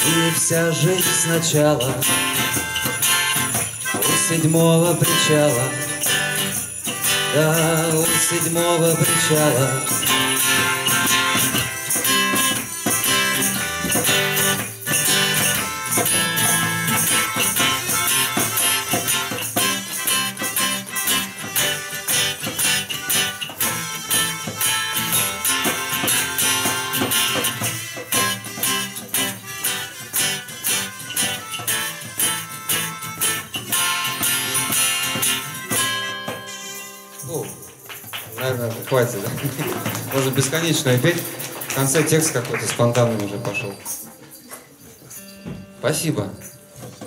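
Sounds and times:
melodica: 0.0s - 37.5s
hand drum: 0.0s - 42.0s
acoustic guitar strumming: 0.0s - 47.0s.

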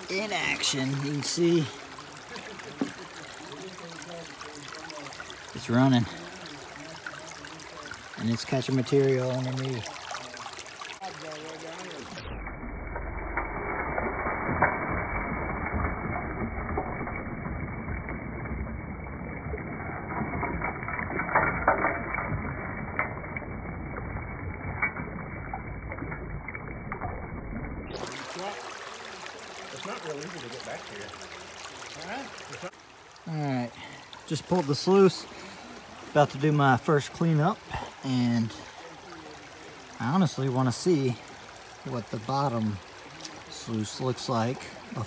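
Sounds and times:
water rushing through sluice: 0.0s - 45.0s
low rumble: 12.2s - 28.1s
gravel and stones clicking: 19.5s - 28.1s.

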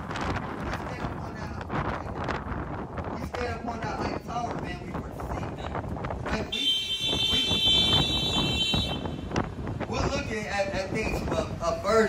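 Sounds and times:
city street noise: 0.0s - 12.0s
wind on microphone: 0.0s - 12.0s.

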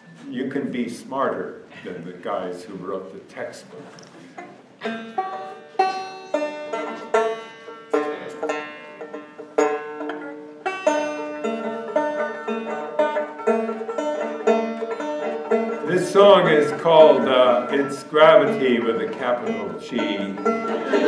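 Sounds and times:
banjo picking: 2.5s - 21.0s.

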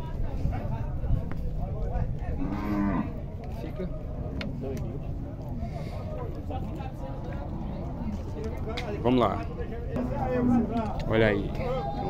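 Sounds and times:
cow mooing: 2.4s - 3.2s.

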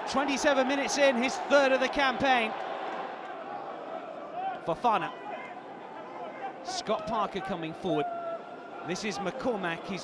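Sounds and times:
man commentating: 0.0s - 2.5s, 8.9s - 10.0s
stadium crowd noise: 0.0s - 10.0s.

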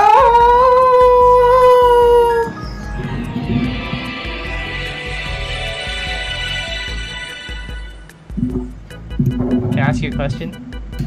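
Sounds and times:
long steady howl: 0.0s - 7.3s
quiet background music: 0.0s - 11.0s.

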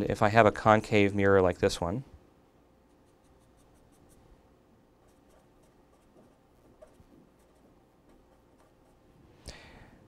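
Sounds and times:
marker scratching on paper: 2.9s - 4.2s, 5.0s - 9.0s.

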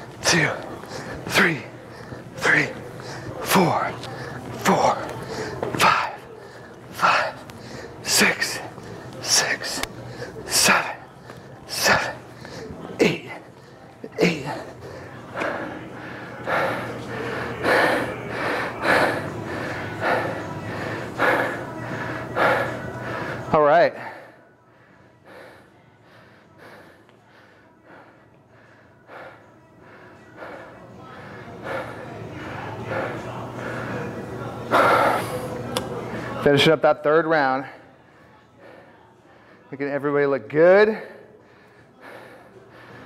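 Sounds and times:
man breathing hard: 0.0s - 36.4s, 40.8s - 43.0s.

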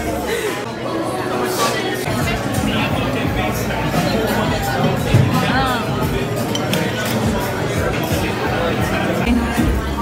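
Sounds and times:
diners chattering: 0.0s - 10.0s
dishes and cutlery clinking: 4.8s - 8.3s.

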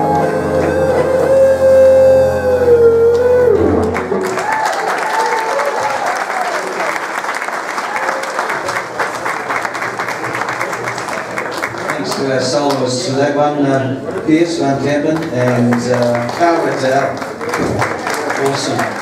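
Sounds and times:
big band chord: 0.0s - 4.4s
audience applause: 3.0s - 13.1s, 15.2s - 19.0s.

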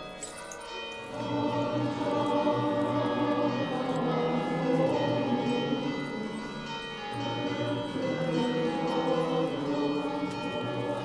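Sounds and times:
small bells jingling: 0.0s - 3.9s
choir singing a hymn: 1.2s - 11.0s.

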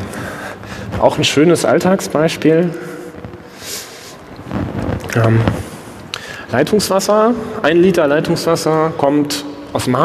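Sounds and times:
low microphone rush: 0.0s - 10.0s
soft microphone hiss: 0.0s - 10.0s.

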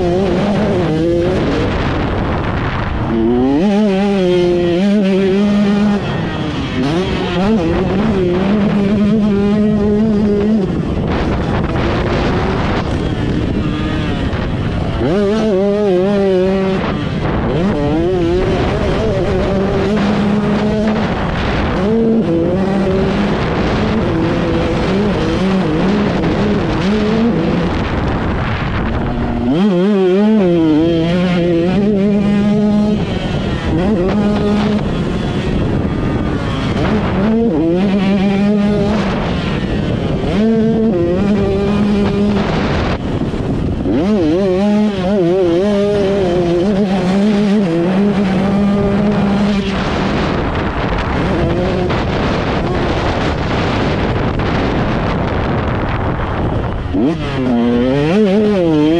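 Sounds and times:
motocross engine revving: 0.0s - 58.9s
rush of wind noise: 0.0s - 58.9s.

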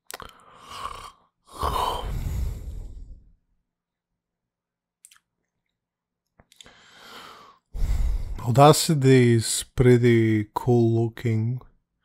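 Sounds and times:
breath into a microphone: 1.6s - 3.4s, 6.6s - 8.4s
person speaking: 8.3s - 11.7s.

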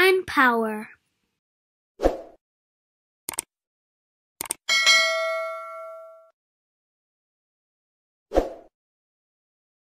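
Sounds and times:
bell-like notification ding: 4.7s - 6.3s.

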